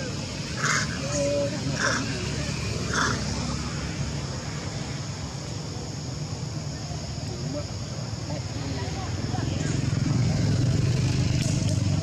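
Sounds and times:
steady high hiss: 0.0 - 12.0
harsh animal calls: 0.5 - 3.4.

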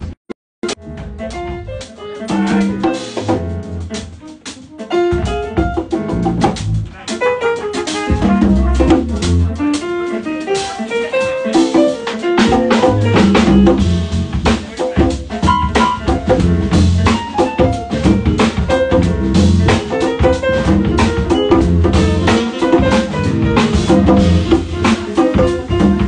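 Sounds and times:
jazz band playing: 0.6 - 26.0.

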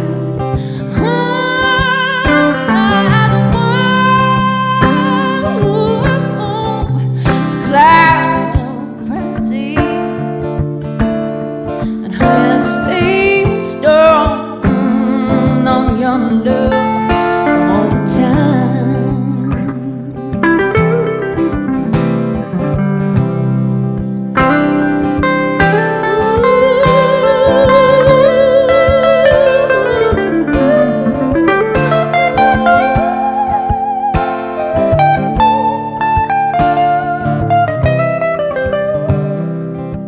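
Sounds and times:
electric guitar lead melody: 0.0 - 40.0
strummed acoustic guitar: 0.0 - 40.0.

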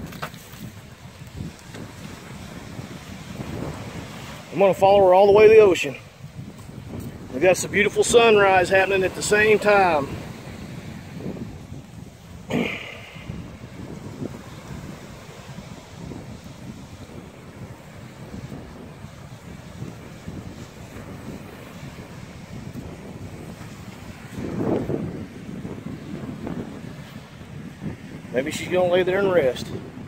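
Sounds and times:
small waves on shore: 0.0 - 30.0
wind buffeting microphone: 0.0 - 30.0.

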